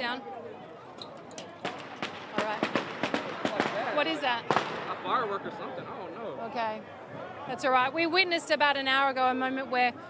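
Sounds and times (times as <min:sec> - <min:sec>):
firecrackers cracking: 0:01.6 - 0:05.0.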